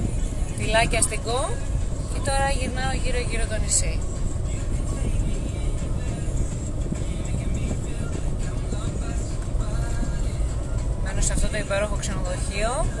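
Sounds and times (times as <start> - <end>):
car cabin road and engine rumble: 0.0 - 13.0
faint music: 0.0 - 13.0.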